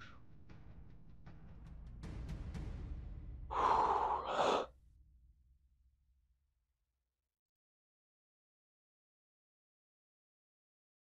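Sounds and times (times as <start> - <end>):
person sighing: 3.5 - 4.7.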